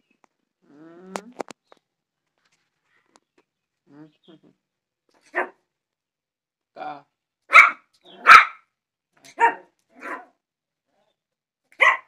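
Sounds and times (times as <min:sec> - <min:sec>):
puppy barking: 0:05.3 - 0:05.6, 0:07.5 - 0:08.7, 0:09.3 - 0:10.4, 0:11.8 - 0:12.0.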